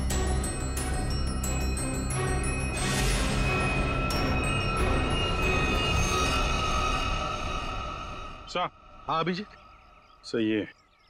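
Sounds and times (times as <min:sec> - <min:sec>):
suspenseful background music: 0:00.0 - 0:10.3.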